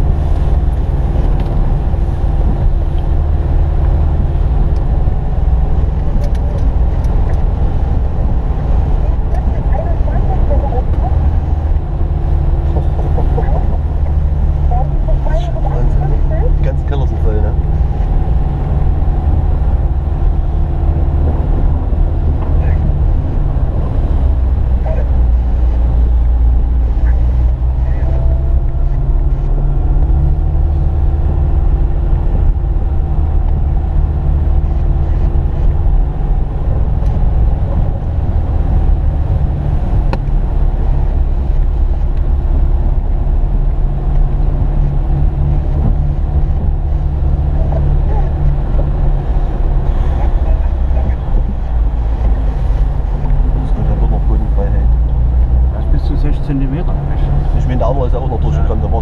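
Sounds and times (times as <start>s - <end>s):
car engine rumble: 0.0s - 59.0s.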